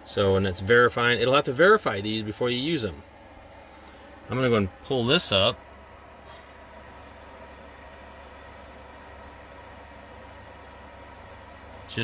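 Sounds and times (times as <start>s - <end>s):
electronics and cooling fans humming: 0.0s - 12.0s.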